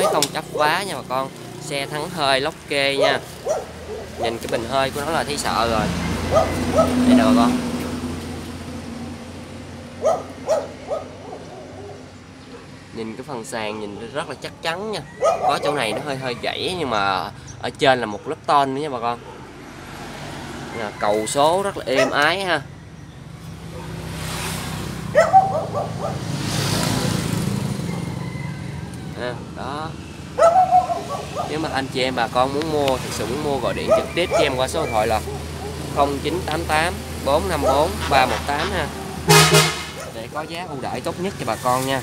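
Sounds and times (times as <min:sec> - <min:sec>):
vehicle passing: 0:00.0 - 0:42.0
animal hooting calls: 0:15.0 - 0:16.5, 0:33.6 - 0:36.0.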